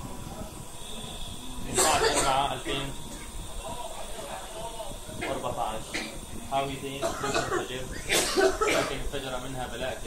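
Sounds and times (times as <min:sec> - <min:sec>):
men talking: 0:00.0 - 0:10.0
coughing: 0:01.7 - 0:03.3, 0:05.2 - 0:06.3, 0:07.0 - 0:09.1.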